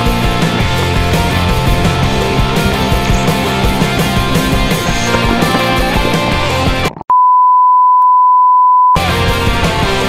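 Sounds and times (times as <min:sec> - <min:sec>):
rock music with guitar: 0:00.0 - 0:07.0.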